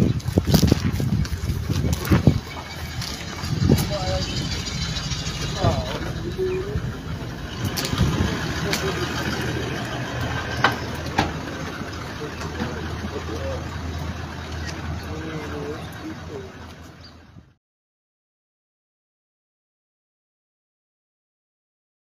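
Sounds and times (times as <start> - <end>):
indistinct voices: 0.0 - 17.4
vehicle engine idling: 0.0 - 17.6.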